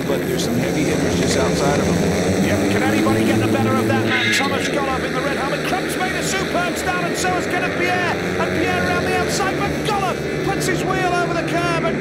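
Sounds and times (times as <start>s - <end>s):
motorbikes racing: 0.0s - 12.0s.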